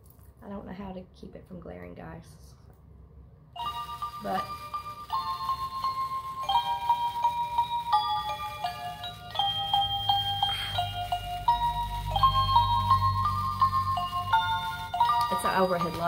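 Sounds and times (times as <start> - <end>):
music box tinkling melody: 3.6 - 16.0.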